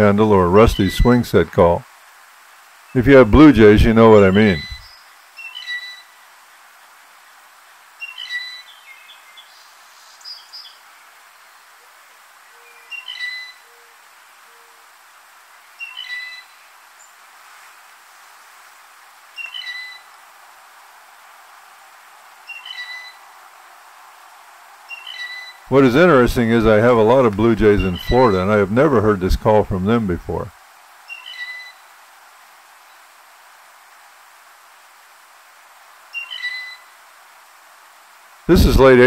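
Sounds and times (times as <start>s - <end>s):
blue jay creaky call: 4.3s - 6.2s, 8.0s - 8.7s, 12.6s - 13.9s, 15.8s - 16.6s, 19.4s - 20.1s, 22.4s - 23.3s, 24.9s - 25.7s, 31.1s - 31.8s, 36.1s - 37.0s.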